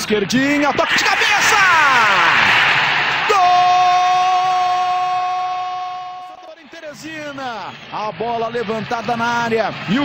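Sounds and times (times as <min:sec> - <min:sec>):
commentator shouting goal: 0:00.2 - 0:02.5, 0:03.2 - 0:10.0.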